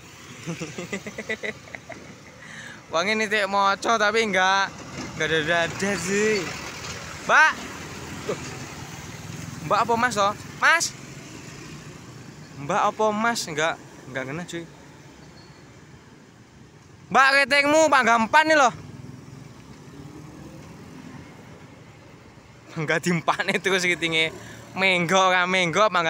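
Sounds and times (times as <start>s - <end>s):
motorcycles passing by: 0.0s - 16.6s, 17.6s - 26.0s
road traffic noise: 0.0s - 26.0s.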